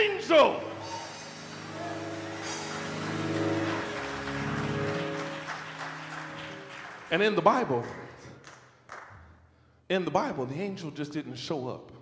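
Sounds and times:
church organ sustained chords: 0.0 - 8.2.

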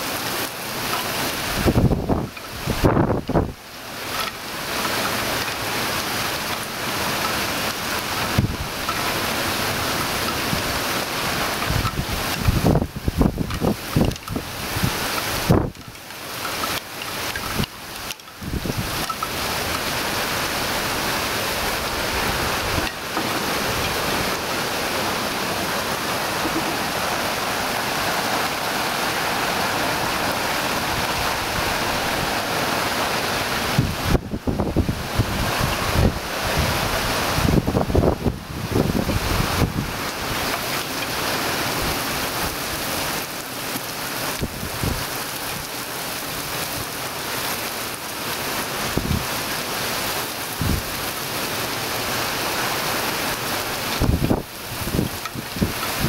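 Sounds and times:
heavy rain on foliage: 0.0 - 56.0
wind buffeting microphone: 1.4 - 3.6, 7.9 - 16.6, 17.3 - 40.5, 44.4 - 45.7, 48.9 - 49.3, 50.5 - 51.1, 53.9 - 56.0.

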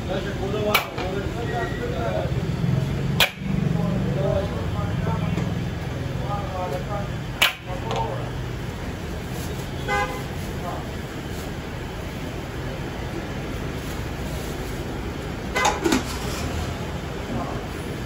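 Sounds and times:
vehicles running: 0.0 - 18.0.

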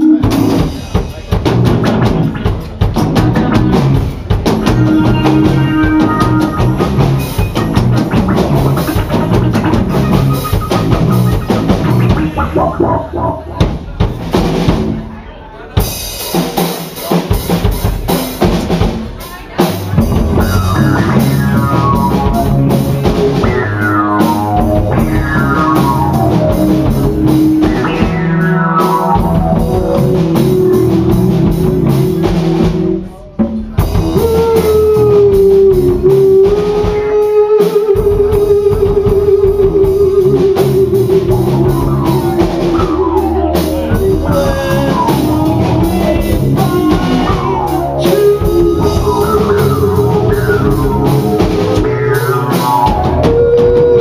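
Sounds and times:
live rock band playing: 0.0 - 54.0
falling pitch slides: 20.4 - 33.0, 36.0 - 54.0.

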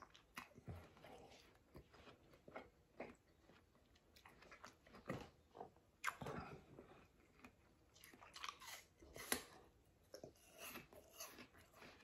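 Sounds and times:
person crunching apple: 0.0 - 12.0.

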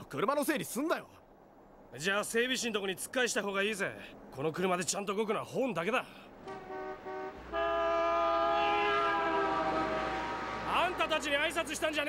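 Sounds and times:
car horn honking: 6.4 - 11.2.

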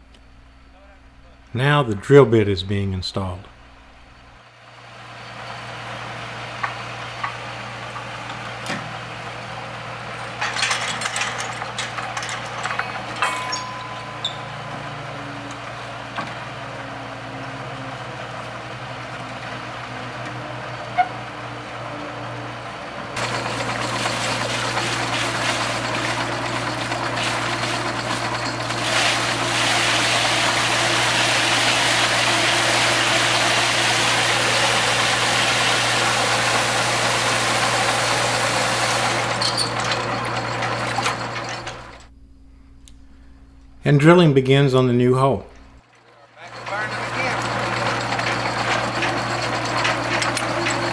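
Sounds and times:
drilling rig engine running: 5.4 - 42.1, 45.8 - 50.9
metal clanks: 10.2 - 15.6, 45.5 - 50.9
drilling fluid rushing: 23.2 - 41.9, 46.4 - 50.9.

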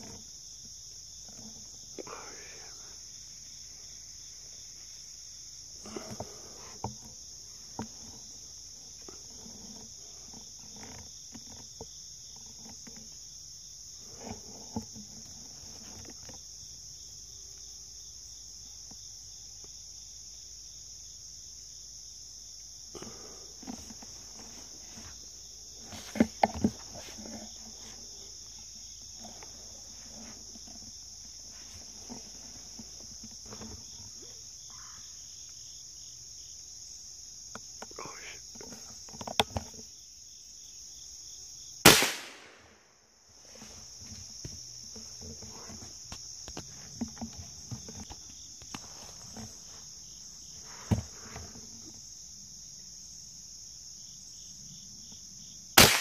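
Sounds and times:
insects droning: 0.0 - 56.0
sharp knocks and crackles: 5.8 - 13.4, 14.0 - 16.6, 23.0 - 35.0, 37.5 - 39.9, 43.4 - 52.0.

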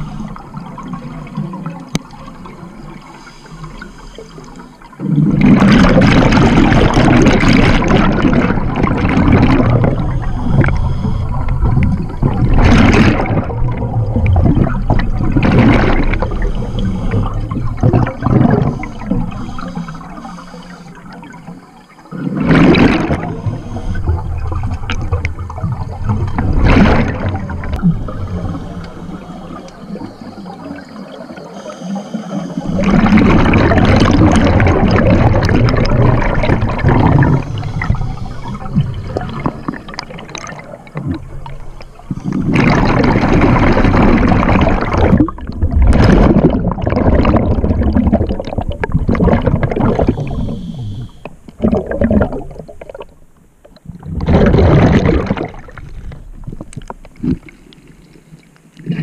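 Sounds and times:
underwater bubbles gurgling: 0.0 - 59.0.

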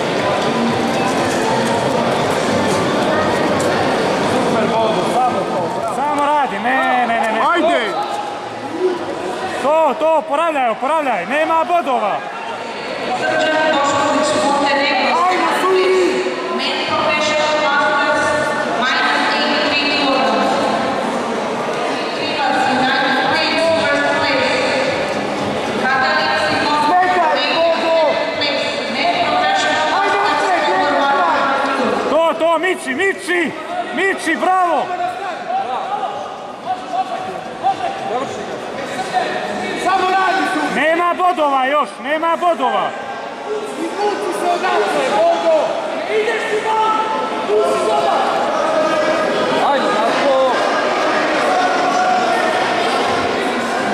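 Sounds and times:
people talking and calling out: 0.0 - 53.9.

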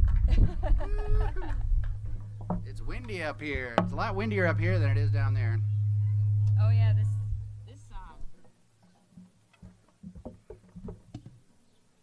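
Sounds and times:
wind rumble on microphone: 0.0 - 8.4.

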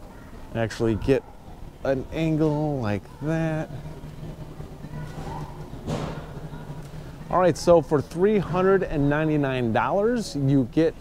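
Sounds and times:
faint background noise: 0.0 - 11.0
steady low hum: 0.0 - 11.0.

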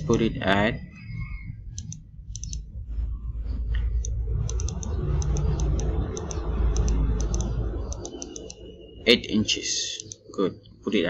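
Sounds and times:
steady low rumble: 0.0 - 11.0
computer mouse button clicking: 1.8 - 2.6, 4.5 - 8.5.

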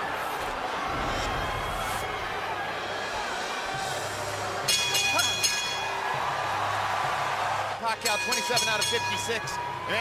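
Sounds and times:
arena crowd noise: 0.0 - 10.0
boxing ring bell: 4.7 - 6.0, 8.0 - 9.6.

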